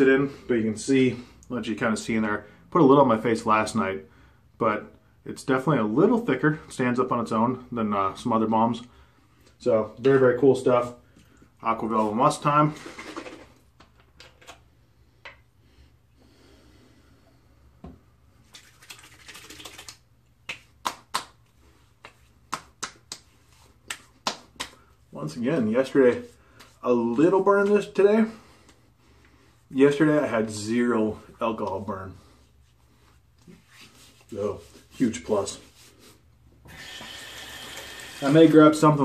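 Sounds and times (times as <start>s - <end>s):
hands patting face: 19.4s - 25.0s
soft rustle: 31.7s - 36.3s
tap water running into sink: 36.7s - 38.7s.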